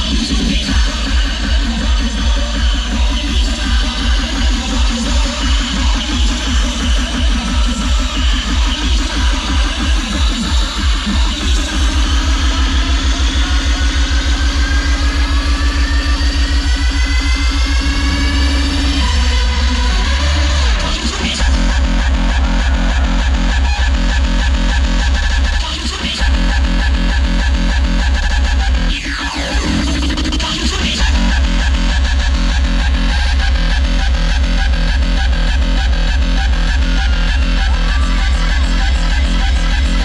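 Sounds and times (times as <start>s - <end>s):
pounding kick drum beat: 0.0s - 28.9s, 29.6s - 40.0s.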